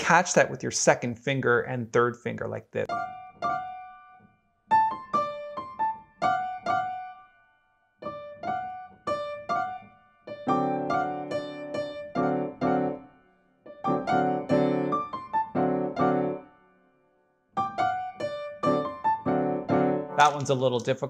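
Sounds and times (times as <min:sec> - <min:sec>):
piano notes and chords: 0:02.8 - 0:21.0.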